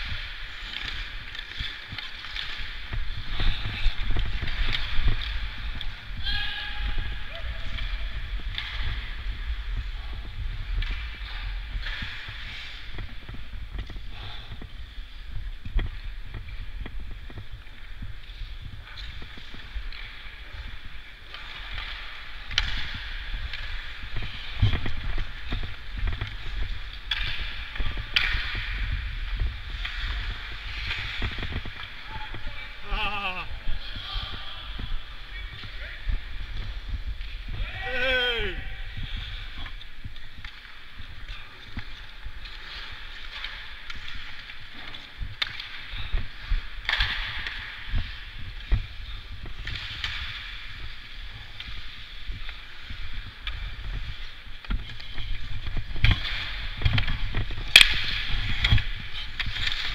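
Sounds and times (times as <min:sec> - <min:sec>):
skates scraping on ice: 0:00.0 - 0:59.9.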